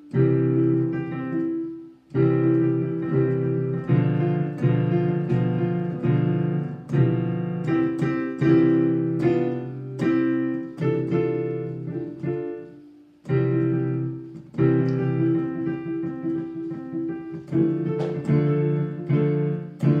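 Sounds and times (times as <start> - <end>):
digital piano arpeggios: 0.0 - 20.0.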